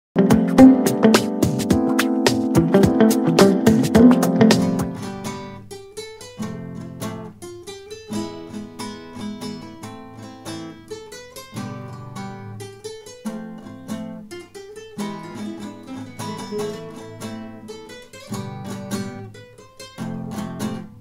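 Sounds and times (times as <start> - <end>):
flamenco acoustic guitar: 0.2 - 21.0.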